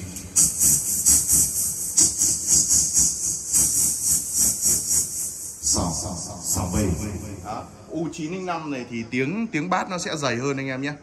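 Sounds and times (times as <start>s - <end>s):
hissing into a microphone: 0.4s - 7.4s.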